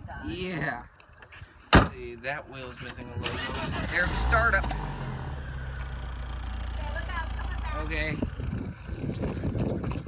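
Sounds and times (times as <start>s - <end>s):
car engine idling: 3.3s - 8.7s.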